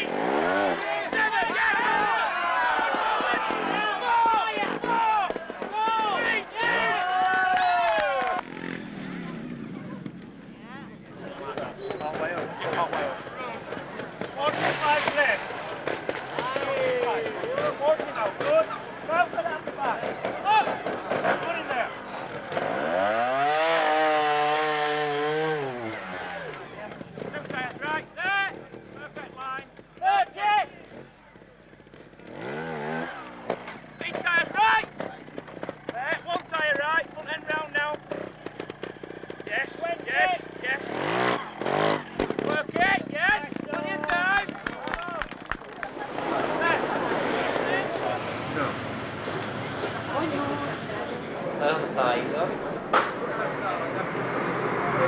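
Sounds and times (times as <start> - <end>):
motorcycle engine revving: 0.0 - 55.0
onlookers' voices: 0.0 - 55.0.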